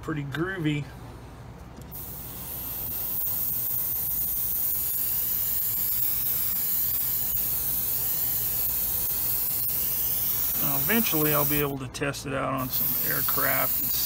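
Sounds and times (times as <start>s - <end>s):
airbrush hissing air: 1.9s - 11.7s, 12.6s - 14.0s.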